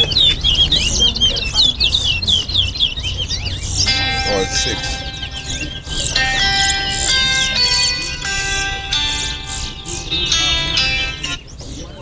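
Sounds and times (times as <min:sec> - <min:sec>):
finch singing high chirps: 0:00.0 - 0:12.0.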